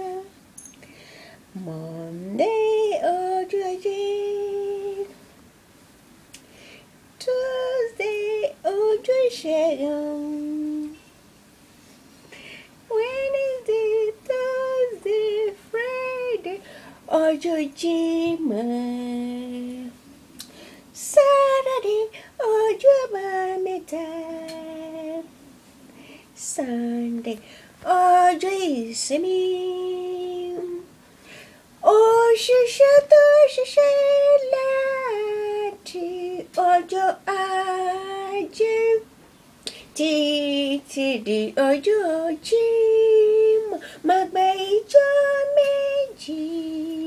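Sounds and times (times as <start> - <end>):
woman singing a steady note: 0.0 - 5.2, 7.1 - 11.2, 12.5 - 25.4, 26.0 - 31.0, 31.7 - 39.1, 39.8 - 47.0.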